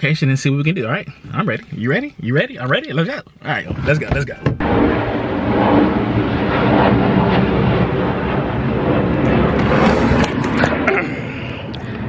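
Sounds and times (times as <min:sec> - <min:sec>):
jet engines rumbling: 0:00.0 - 0:12.0.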